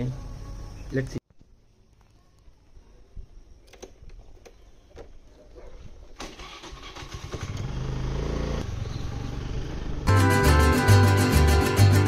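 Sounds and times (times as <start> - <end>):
scooter engine starting and running: 6.2 - 11.5.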